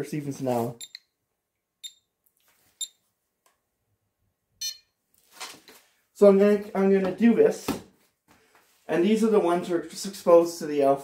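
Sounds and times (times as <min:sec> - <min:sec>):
geiger counter beeps: 0:00.8 - 0:01.0, 0:01.8 - 0:02.1, 0:04.6 - 0:04.9
longer buzzy beep: 0:04.6 - 0:04.9.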